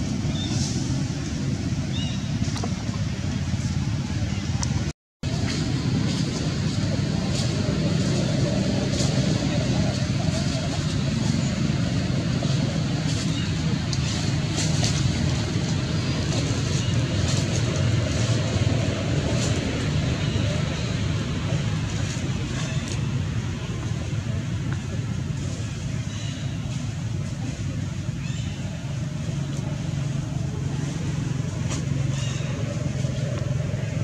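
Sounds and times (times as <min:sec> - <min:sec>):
low outdoor rumble: 0:00.0 - 0:34.0.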